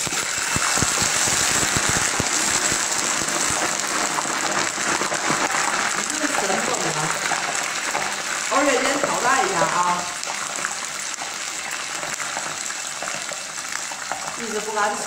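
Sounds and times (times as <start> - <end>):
sharp crackling pops: 0.0 - 14.4
hot oil sizzling: 0.0 - 15.0.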